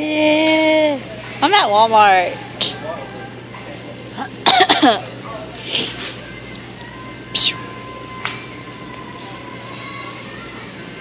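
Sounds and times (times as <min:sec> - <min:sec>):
person coughing: 0:04.4 - 0:05.0.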